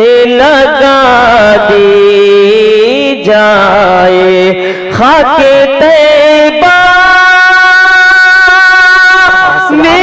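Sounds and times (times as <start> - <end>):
man singing long note: 0.0 - 10.0.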